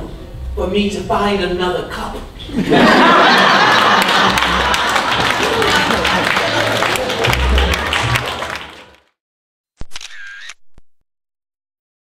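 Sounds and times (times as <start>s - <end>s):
audience applause: 2.8s - 9.1s
camera shutter click and whirr: 9.8s - 10.6s.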